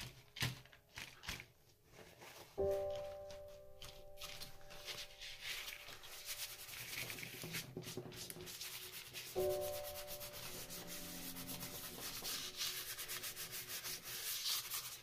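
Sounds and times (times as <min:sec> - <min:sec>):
rag rubbing over paper and plastic: 0:04.2 - 0:15.0.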